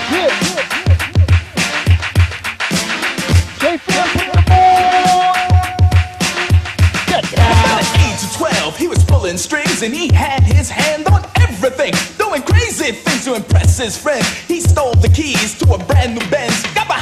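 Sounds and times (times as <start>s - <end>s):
heavy kick drum beat: 0.0s - 17.0s
rapping over a beat: 0.0s - 17.0s.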